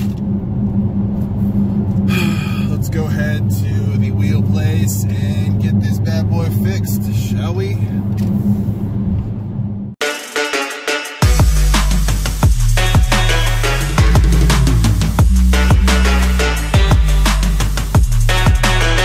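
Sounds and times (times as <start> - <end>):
car engine drone: 0.0 - 10.0, 11.2 - 19.0.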